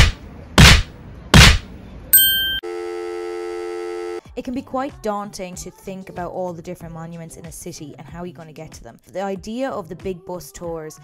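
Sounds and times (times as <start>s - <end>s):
high electronic beep: 2.2s - 2.6s
steady electronic test tone: 2.2s - 4.2s.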